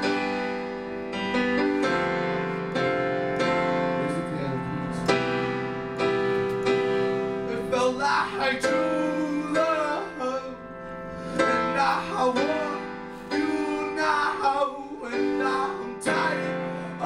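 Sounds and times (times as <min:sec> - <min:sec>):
piano chords: 0:00.0 - 0:17.0
man singing: 0:03.4 - 0:05.1, 0:07.4 - 0:17.0.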